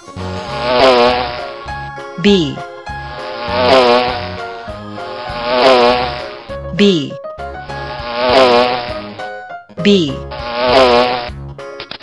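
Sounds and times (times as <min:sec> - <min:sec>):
light plucked music: 0:00.0 - 0:08.0, 0:08.9 - 0:10.4
honeybee buzzing: 0:00.0 - 0:09.4, 0:10.2 - 0:11.4.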